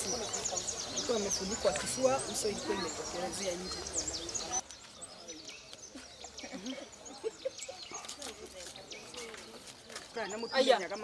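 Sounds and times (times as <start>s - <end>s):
birds chirping: 0.0s - 11.0s
faint voices murmuring: 0.0s - 11.0s.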